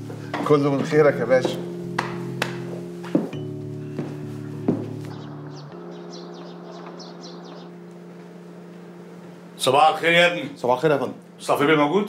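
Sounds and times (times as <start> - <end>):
low background music note: 0.0 - 12.0
small birds chirping: 5.1 - 8.2.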